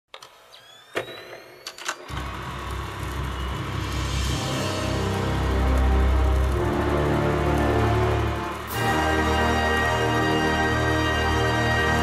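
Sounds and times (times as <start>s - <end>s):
faint rising whine: 0.6s - 11.5s
projector motor humming: 2.1s - 12.0s.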